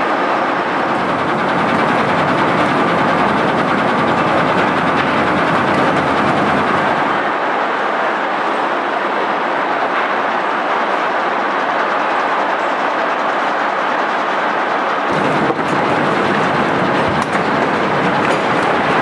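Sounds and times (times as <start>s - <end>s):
continuous rattle: 0.0s - 19.0s
conveyor machinery din: 0.0s - 19.0s.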